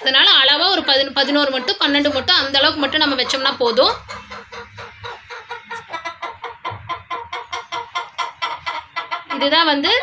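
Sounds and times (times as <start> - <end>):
hen clucking: 0.0 - 10.0.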